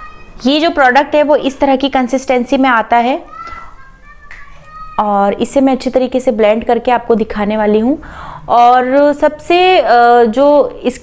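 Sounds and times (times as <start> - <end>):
faint high-pitched voices: 0.0 - 0.6, 3.2 - 5.2.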